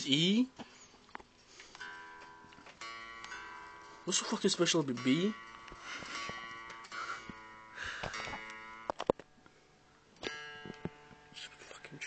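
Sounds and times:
plucked guitar string ringing: 1.8s - 12.0s.

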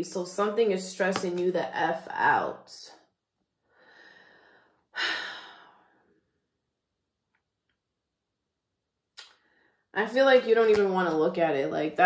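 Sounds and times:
woman breathing in softly: 3.6s - 6.0s.

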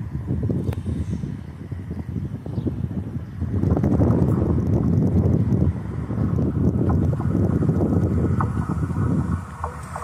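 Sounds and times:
wind buffeting microphone: 0.0s - 10.0s
faint passenger train running: 5.4s - 10.0s.

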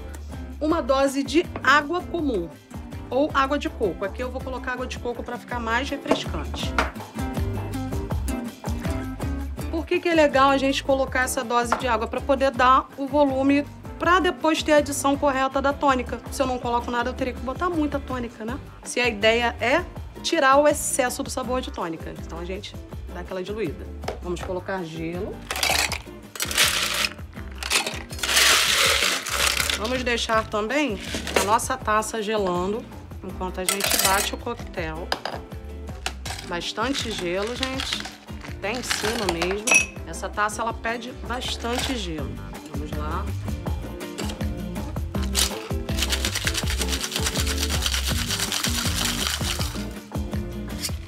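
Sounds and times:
background music: 0.0s - 51.0s
ice cubes clattering on metal: 25.4s - 30.1s, 31.0s - 31.6s, 33.7s - 34.3s, 36.0s - 39.8s, 45.2s - 49.8s.

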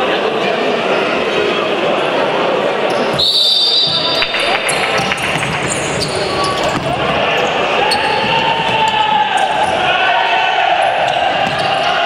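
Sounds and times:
crowd chatter echoing: 0.0s - 12.0s
referee whistle blast: 3.1s - 4.8s.

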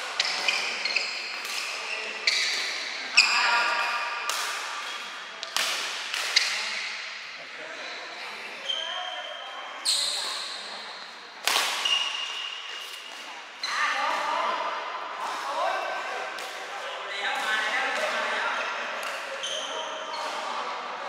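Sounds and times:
rackets striking shuttlecock: 3.7s - 7.2s, 11.4s - 13.2s.

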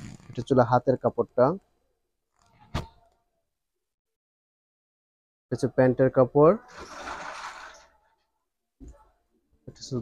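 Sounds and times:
fabric rustling: 6.7s - 8.1s.

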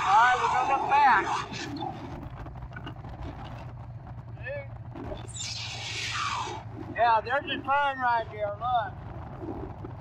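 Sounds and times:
rush of noise: 0.0s - 10.0s
motorcycle engine running: 1.8s - 5.4s, 6.6s - 10.0s.

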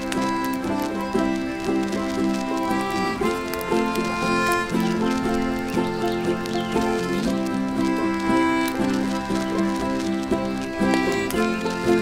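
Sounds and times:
concertina playing blues chords: 0.0s - 12.0s.

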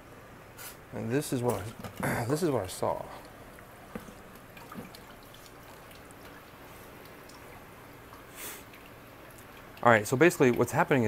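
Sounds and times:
water dripping and trickling: 2.4s - 11.0s.

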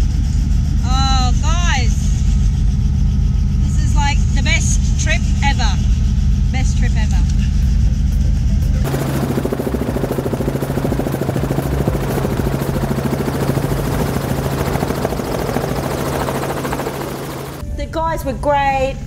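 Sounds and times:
helicopter rotor chopping: 0.0s - 17.6s.

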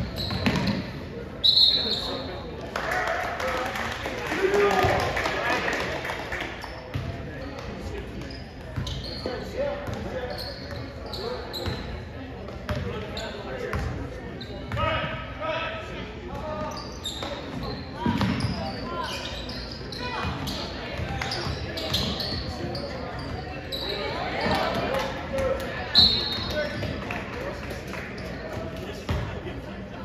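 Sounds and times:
sneaker squeaks: 0.0s - 2.4s, 6.6s - 12.1s, 12.7s - 15.1s, 16.3s - 25.0s, 25.8s - 27.0s
voices in a gym: 0.0s - 30.0s.

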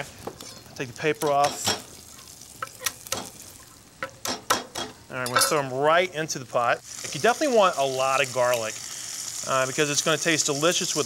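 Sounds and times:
bacon sizzling in oil: 0.0s - 11.0s
sharp crackles of frying: 0.0s - 11.0s.

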